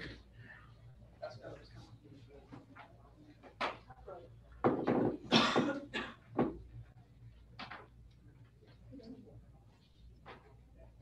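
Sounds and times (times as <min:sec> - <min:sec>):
person coughing: 0:05.3 - 0:06.2.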